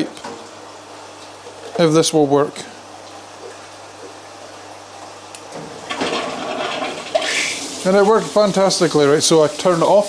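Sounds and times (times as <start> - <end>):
water rushing into drain: 5.8 - 10.0.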